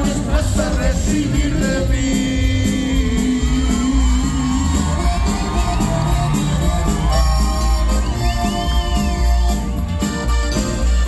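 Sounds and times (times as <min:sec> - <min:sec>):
accordion: 0:00.0 - 0:11.0
band playing through loud speakers: 0:00.0 - 0:11.0
audience whooping and cheering: 0:03.2 - 0:10.6.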